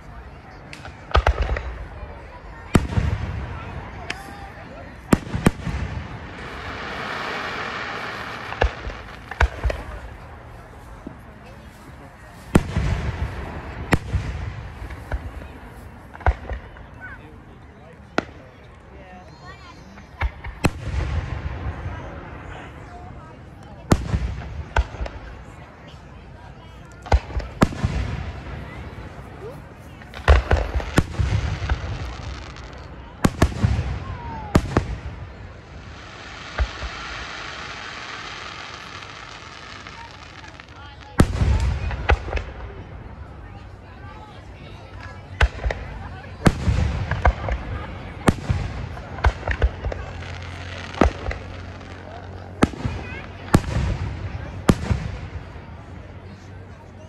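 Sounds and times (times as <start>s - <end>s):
fireworks bursting: 0.5s - 17.2s, 19.8s - 22.5s, 23.9s - 25.9s, 26.8s - 43.6s, 44.2s - 56.1s.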